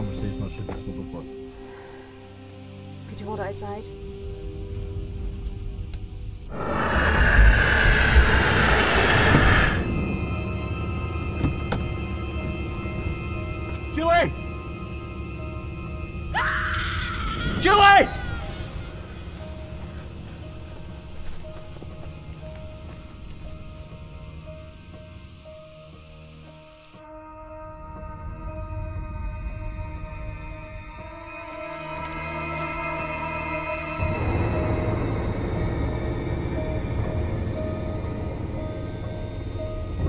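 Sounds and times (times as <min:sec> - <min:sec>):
eerie sustained drone: 0:00.0 - 0:40.0
loud noisy surge: 0:06.5 - 0:10.4.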